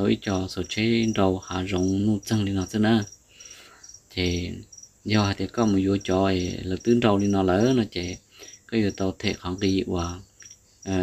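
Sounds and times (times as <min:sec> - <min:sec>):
man talking: 0:00.0 - 0:03.1, 0:04.1 - 0:10.3
insect chirping: 0:00.0 - 0:11.0.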